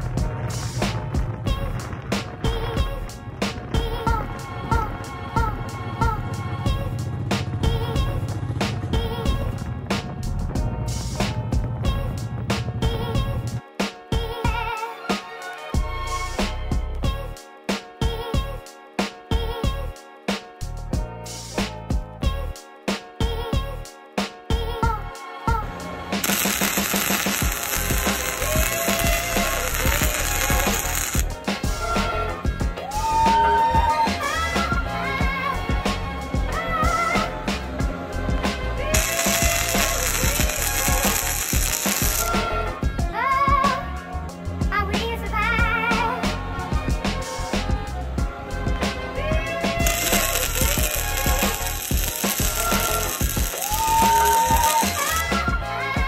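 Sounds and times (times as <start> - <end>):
background music: 0.0 - 56.0
arc welding crackling hiss: 26.2 - 31.4, 38.9 - 42.4, 49.8 - 55.3.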